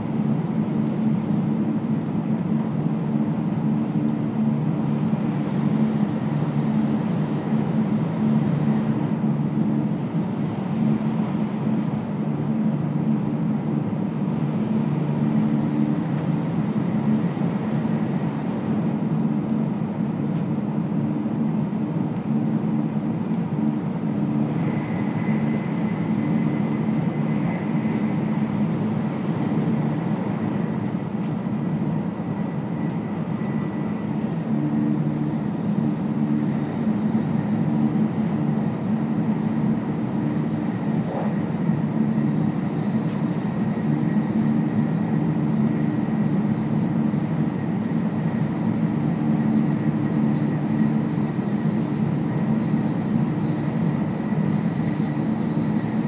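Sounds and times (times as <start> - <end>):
train cabin low rumble: 0.0 - 56.0.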